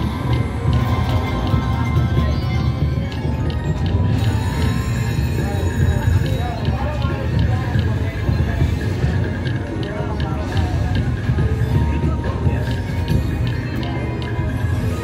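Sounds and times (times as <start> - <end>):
slot machine bonus music: 0.0 - 9.8, 10.4 - 15.0.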